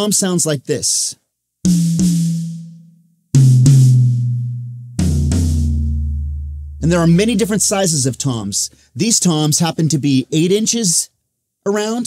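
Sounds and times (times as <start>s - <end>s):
floor tom drum hits: 1.7s - 2.8s, 3.4s - 7.8s
rack tom drum hits: 1.7s - 2.8s, 3.4s - 8.4s.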